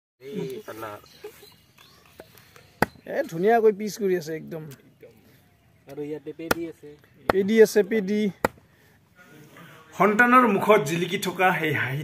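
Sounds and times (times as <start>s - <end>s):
machete chopping into wooden block: 8.4s - 8.6s.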